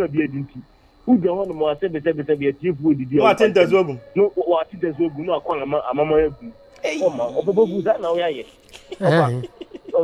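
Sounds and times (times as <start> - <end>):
presenters talking: 1.1 - 10.0.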